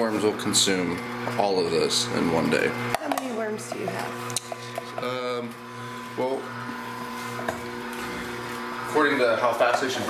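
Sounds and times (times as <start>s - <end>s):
juicer motor humming: 0.0s - 10.0s.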